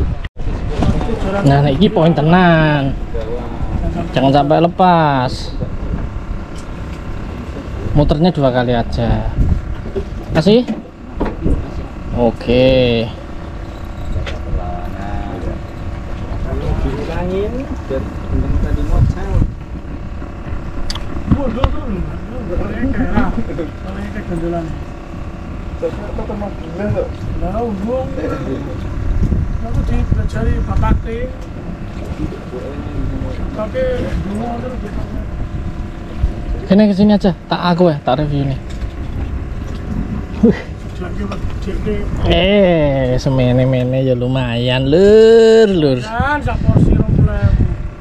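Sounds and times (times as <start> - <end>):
boat engine humming: 0.0 - 48.0
people talking: 0.8 - 5.6, 12.1 - 13.2, 21.3 - 24.8, 25.8 - 28.8, 29.6 - 31.4, 32.1 - 35.4, 36.6 - 38.6, 40.4 - 47.8.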